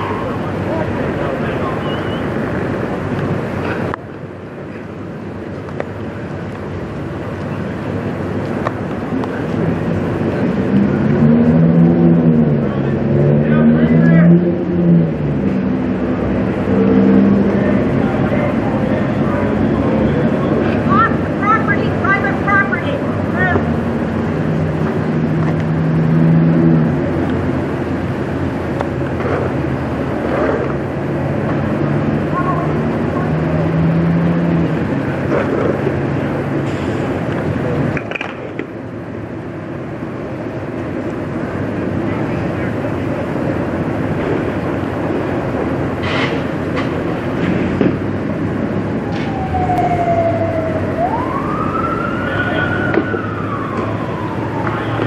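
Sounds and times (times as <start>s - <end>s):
emergency vehicle siren wailing: 0.0s - 4.0s, 48.1s - 55.0s
faint voices: 16.8s - 24.0s, 49.3s - 55.0s.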